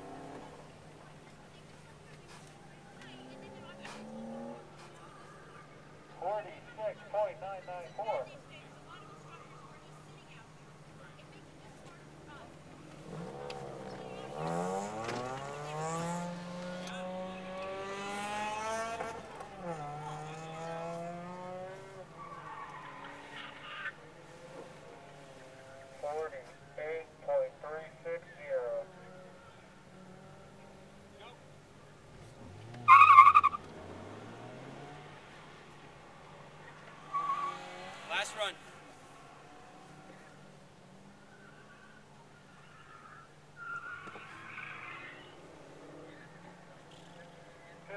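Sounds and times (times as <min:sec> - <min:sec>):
engine revving: 0:00.0 - 0:00.7, 0:03.0 - 0:04.8, 0:12.9 - 0:26.3, 0:32.1 - 0:41.2
tire squeal: 0:18.1 - 0:24.4, 0:32.3 - 0:35.0, 0:35.8 - 0:40.4, 0:41.0 - 0:47.8.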